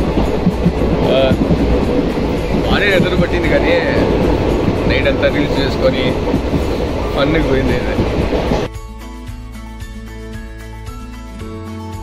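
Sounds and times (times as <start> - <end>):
people talking: 1.0 - 1.4, 2.5 - 4.2, 4.8 - 6.2, 7.1 - 8.1.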